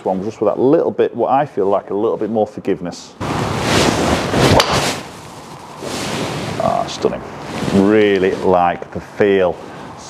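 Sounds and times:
golf club swing swish: 3.3 - 5.1
golf club striking ball: 4.5 - 4.8.

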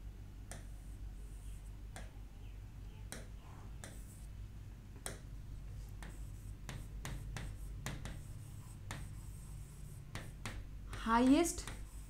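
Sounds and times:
pen writing on a board: 0.5 - 2.1, 3.1 - 4.3, 5.8 - 12.0.

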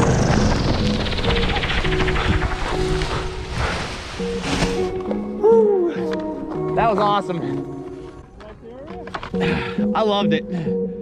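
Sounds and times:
rushing noise: 0.0 - 4.8
background music: 0.0 - 11.0.

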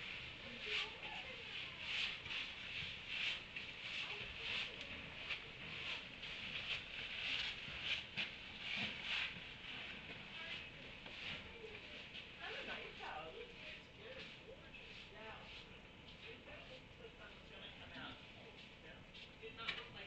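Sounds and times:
donkeys chewing hay: 0.0 - 15.8.

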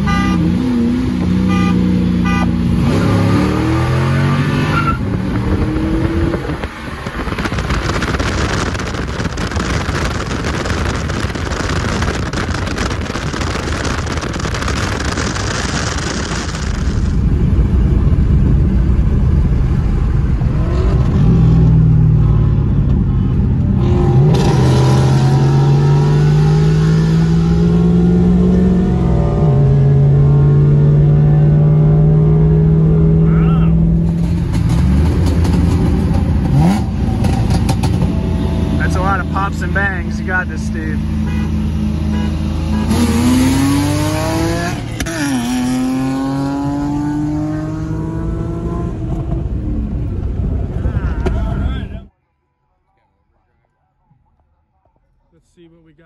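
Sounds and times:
car engine accelerating: 0.3 - 51.8
wind buffeting microphone: 4.9 - 21.2.

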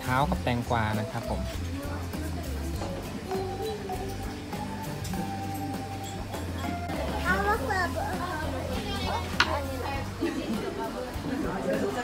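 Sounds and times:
child chattering: 7.2 - 9.9.

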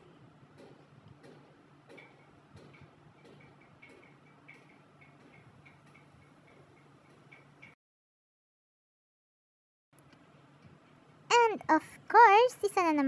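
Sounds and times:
soft regular ticking: 1.9 - 7.8.

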